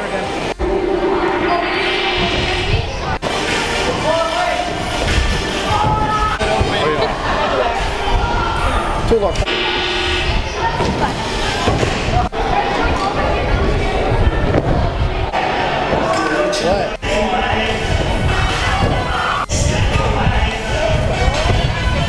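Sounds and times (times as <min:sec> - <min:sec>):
background music: 0:00.0 - 0:08.4
voices echoing in hall: 0:00.0 - 0:22.0.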